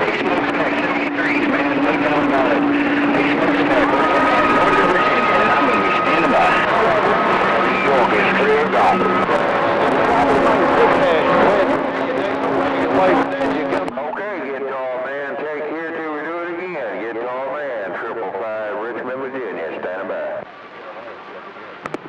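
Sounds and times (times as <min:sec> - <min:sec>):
steady hum: 0:00.0 - 0:17.8
garbled radio voice: 0:00.0 - 0:21.4
radio static: 0:00.0 - 0:22.0.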